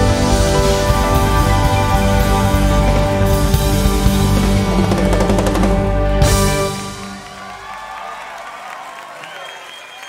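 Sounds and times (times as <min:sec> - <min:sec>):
live band final chord ringing: 0:00.0 - 0:07.6
audience cheering and whooping: 0:06.5 - 0:10.0.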